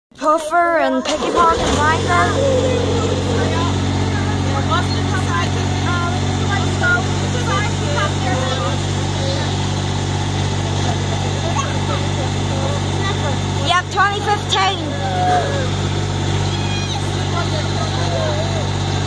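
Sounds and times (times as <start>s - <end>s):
faint voices: 0.2s - 19.0s
miniature train droning: 0.6s - 19.0s.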